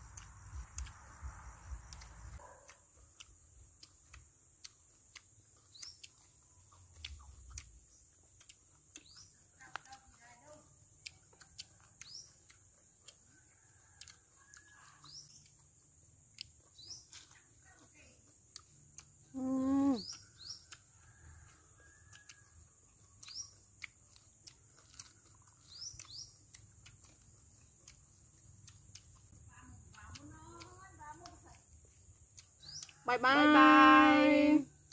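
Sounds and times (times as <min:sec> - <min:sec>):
small birds chirping: 0:00.0 - 0:34.9.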